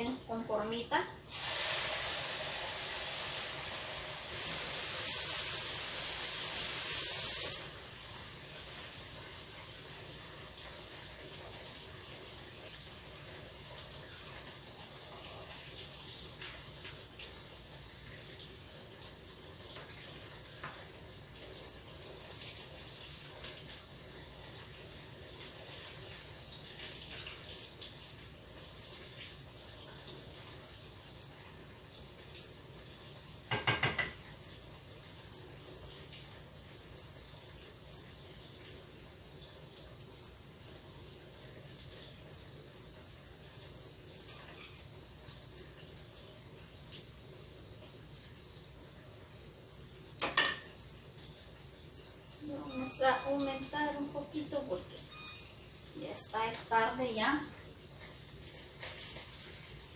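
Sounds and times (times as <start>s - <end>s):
dough sizzling in hot oil: 0.0s - 59.9s.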